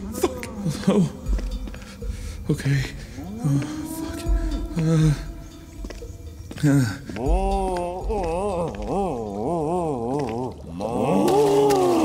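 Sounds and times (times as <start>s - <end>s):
person moaning with wavering pitch: 3.2s - 5.6s, 7.2s - 12.0s.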